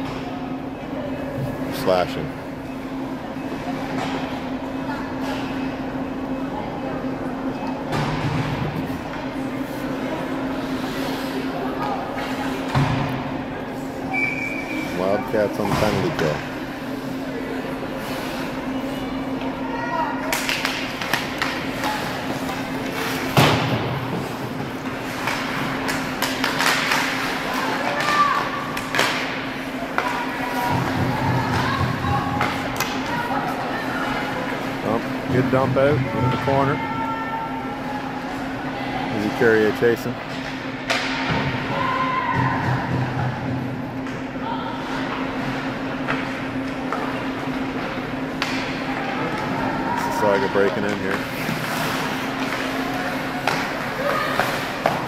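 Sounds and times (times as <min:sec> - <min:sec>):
steady hum: 0:00.0 - 0:55.0
skates scraping ice: 0:09.6 - 0:12.6, 0:50.0 - 0:55.0
high whistle tone: 0:14.1 - 0:14.9
sticks and puck clattering: 0:20.2 - 0:36.5, 0:40.2 - 0:41.6, 0:44.9 - 0:55.0.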